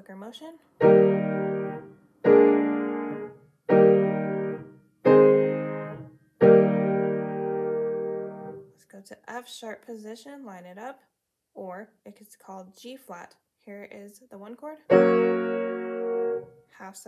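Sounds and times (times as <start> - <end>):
piano chords: 0.8 - 8.6, 14.9 - 16.5.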